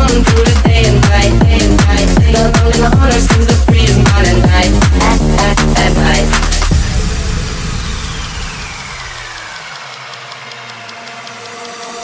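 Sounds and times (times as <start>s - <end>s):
rushing noise sweep: 6.2s - 12.0s.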